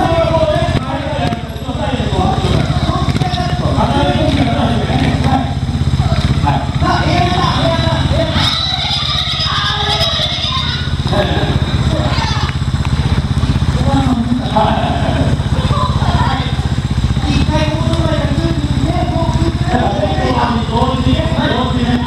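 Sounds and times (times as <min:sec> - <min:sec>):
motorcycle engine idling: 0:00.0 - 0:22.0.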